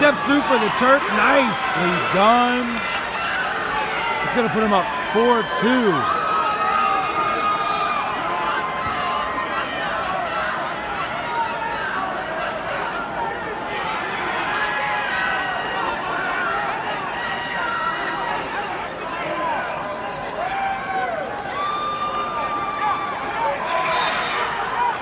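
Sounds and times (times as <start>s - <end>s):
crowd shouting and talking: 0.0s - 25.0s.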